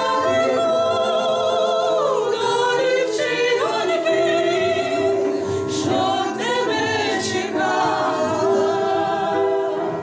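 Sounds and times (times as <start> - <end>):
digital piano: 0.0 - 10.0
women singing in harmony: 0.0 - 10.0.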